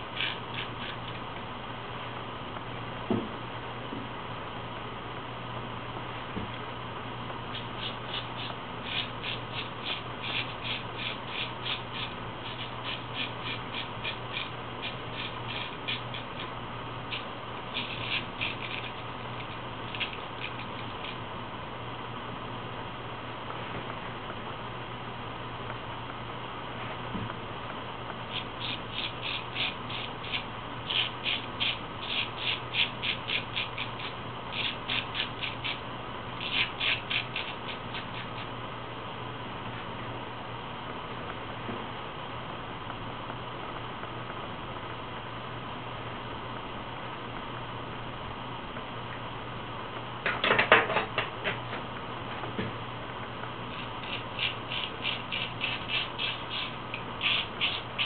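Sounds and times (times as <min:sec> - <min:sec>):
razor scraping stubble: 0:00.0 - 0:01.2, 0:07.5 - 0:21.2, 0:28.3 - 0:35.8, 0:36.4 - 0:38.5, 0:53.7 - 0:58.0.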